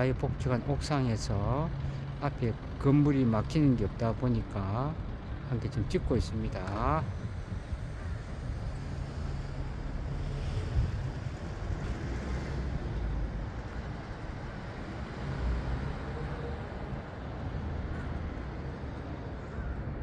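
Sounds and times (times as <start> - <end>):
distant city noise: 0.0 - 20.0
wind rumbling on microphone: 5.2 - 20.0.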